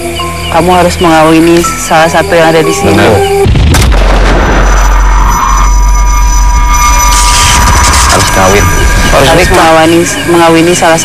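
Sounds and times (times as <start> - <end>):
deep boom: 3.4 - 9.8
low rumble: 3.4 - 11.0
thin high tone: 4.5 - 11.0.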